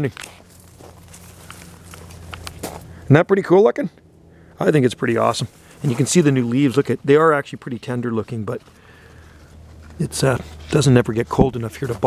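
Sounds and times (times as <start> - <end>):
footsteps on gravel: 0.0 - 3.0, 5.2 - 7.0
low steady hum: 0.0 - 12.0.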